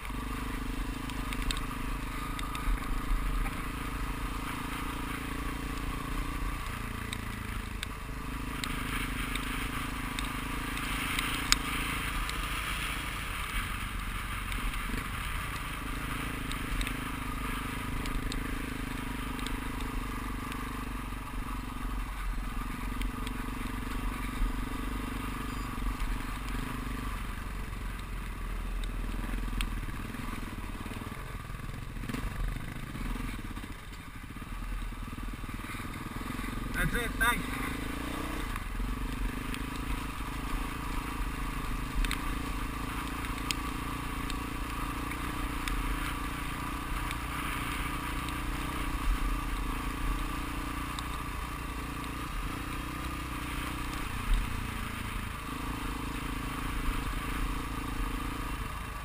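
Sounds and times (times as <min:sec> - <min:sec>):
motorcycle engine running: 0:00.0 - 0:59.0
wind and road noise: 0:00.0 - 0:59.0.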